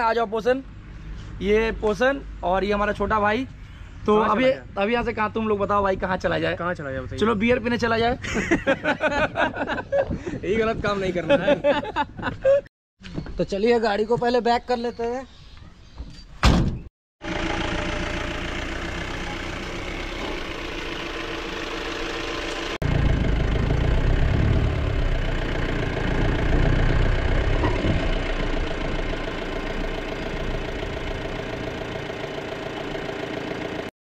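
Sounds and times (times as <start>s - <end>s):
thump: 16.4s - 16.9s
truck engine droning: 17.2s - 33.9s.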